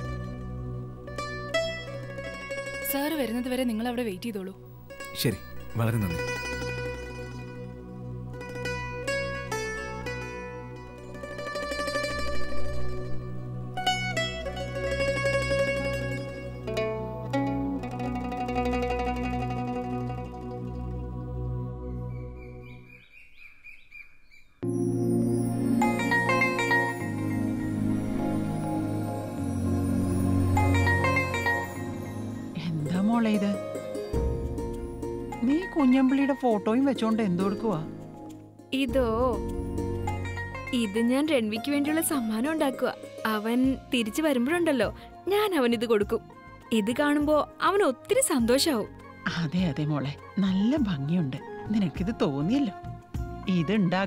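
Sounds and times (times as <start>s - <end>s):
background music: 0.0s - 23.0s, 24.6s - 54.0s
small bird chirping: 22.1s - 24.6s
woman speaking animatedly: 38.8s - 39.4s, 40.8s - 51.1s.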